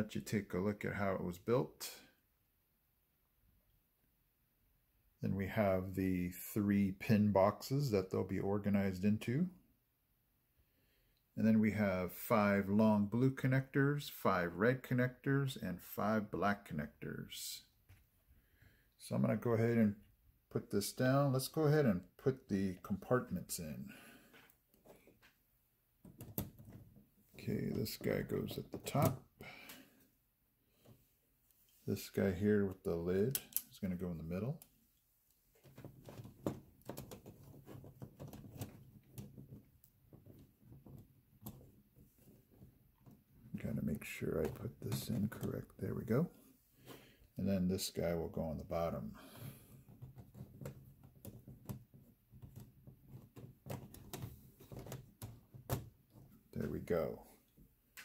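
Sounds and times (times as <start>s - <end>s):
plastic parts knocking and clicking: 26.0s - 27.0s, 35.6s - 43.2s, 49.9s - 56.4s
plastic parts clicking: 35.6s - 39.6s.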